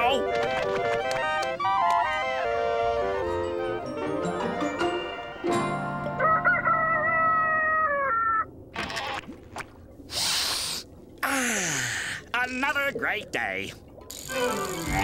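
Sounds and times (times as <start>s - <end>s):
clarinets playing a melody: 1.0s - 5.9s.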